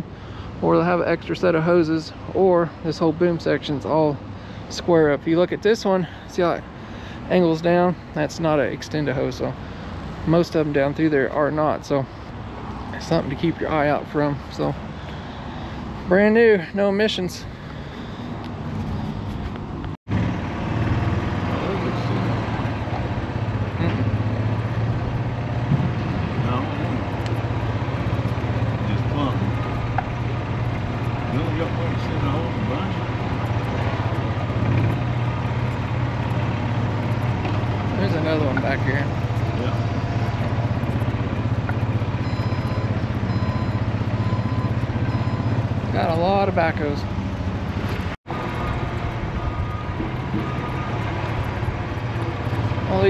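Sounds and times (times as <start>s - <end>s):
diesel engine running: 0.0s - 53.0s
high repeated beeps: 42.2s - 46.3s.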